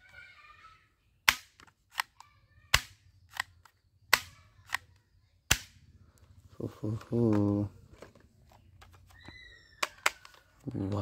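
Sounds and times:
toy rifle snaps: 1.2s - 5.8s.

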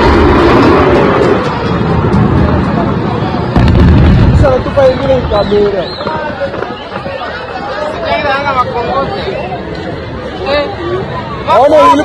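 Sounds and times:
steady background noise: 0.0s - 12.0s
people talking over one another: 0.6s - 12.0s.

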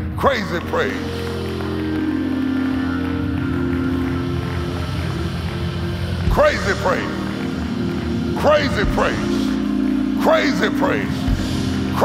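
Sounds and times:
live church praise music: 0.0s - 12.0s.

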